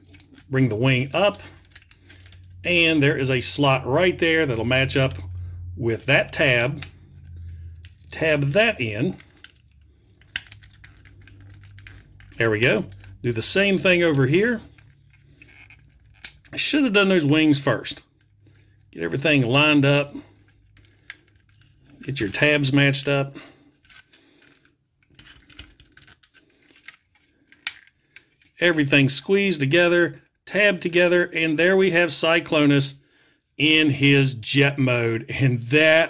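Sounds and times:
plastic parts clicking: 0.0 - 0.5, 1.4 - 2.5, 6.6 - 13.3, 14.6 - 16.6, 23.7 - 28.6
plastic toy parts clicking: 23.8 - 28.5.

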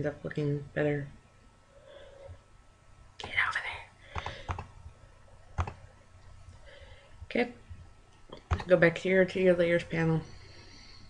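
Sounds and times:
breathy whisper: 3.2 - 4.6
computer mouse clicks: 4.1 - 4.8, 5.6 - 5.8, 8.3 - 8.8.

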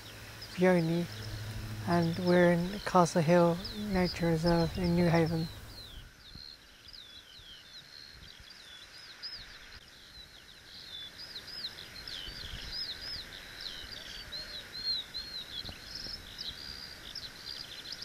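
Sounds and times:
songbird warbling: 0.0 - 6.0
faint outdoor background noise: 0.0 - 18.0.

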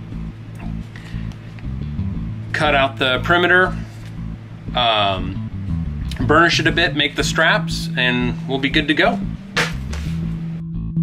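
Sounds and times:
background guitar music: 0.0 - 11.0.

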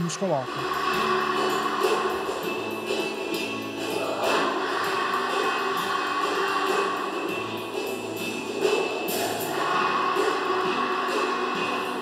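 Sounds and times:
choir and band song: 0.4 - 12.0.

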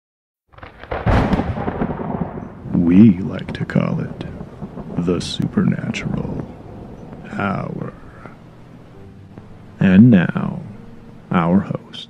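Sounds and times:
thunder rumbling: 0.5 - 11.9.

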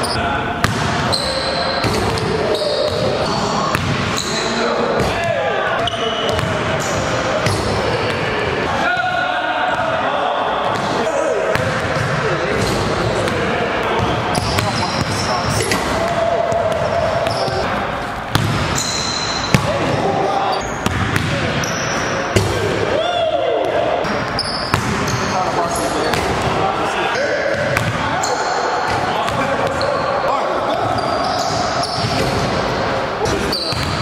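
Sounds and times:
people talking indistinctly: 0.0 - 34.0.

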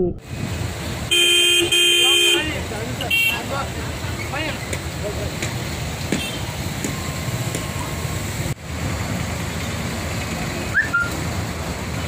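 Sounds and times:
idling engine noise: 0.2 - 12.0
vehicle horn: 1.1 - 3.5, 6.2 - 6.5
voices: 1.6 - 6.4.

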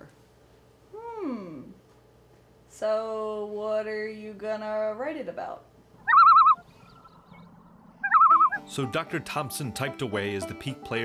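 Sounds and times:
high whistle-like warble: 6.0 - 8.7.

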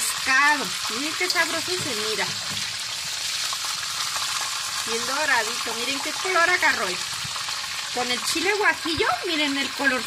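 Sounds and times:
fish frying in hot oil: 0.0 - 10.0.

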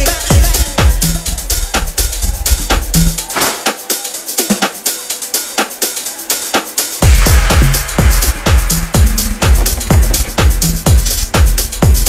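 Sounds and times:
drum and hi-hat beat: 0.0 - 12.0
house music on sound system: 0.0 - 12.0
heavy bass: 7.0 - 12.0.

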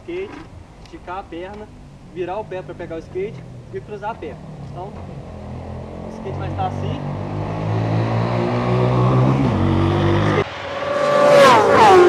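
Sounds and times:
racing motorcycle passing: 1.6 - 12.0.

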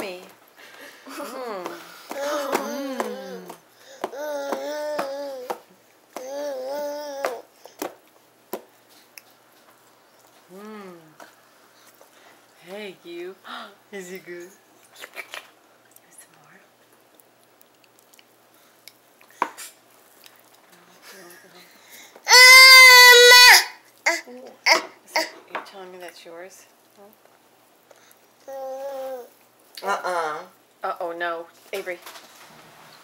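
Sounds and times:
baby patting food on plastic tray: 1.6 - 8.7
baby squealing: 22.3 - 25.3.

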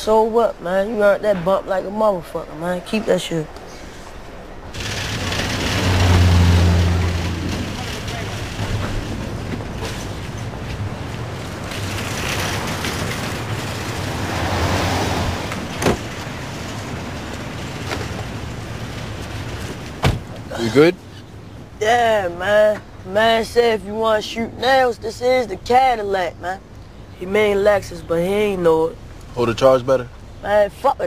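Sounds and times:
car engine humming: 0.0 - 31.0
road and vehicle noise: 0.0 - 31.0.

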